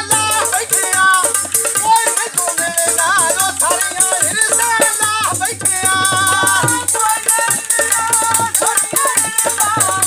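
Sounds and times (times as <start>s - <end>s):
hand drums beating: 0.0s - 10.0s.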